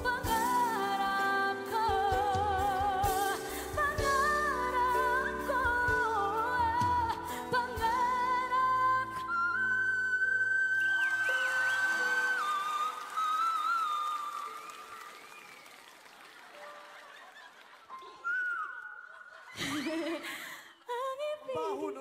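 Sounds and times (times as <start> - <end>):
woman singing a ballad: 0.0 - 11.0, 20.8 - 22.0.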